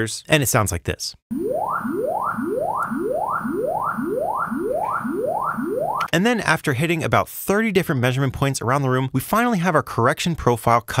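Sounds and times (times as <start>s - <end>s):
rising sine sweeps: 1.3s - 6.1s.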